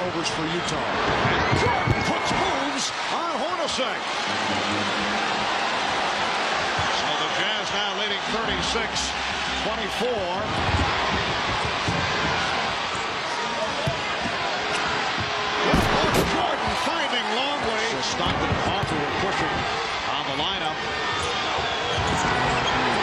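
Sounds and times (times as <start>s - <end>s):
arena crowd noise: 0.0s - 23.0s
basketball bouncing on court: 13.7s - 16.8s, 18.3s - 19.7s.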